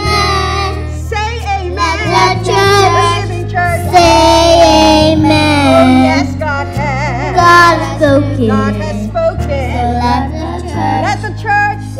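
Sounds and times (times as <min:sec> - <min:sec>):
children singing worship song: 0:00.0 - 0:06.4, 0:07.1 - 0:11.4
low instrumental accompaniment: 0:00.0 - 0:11.9.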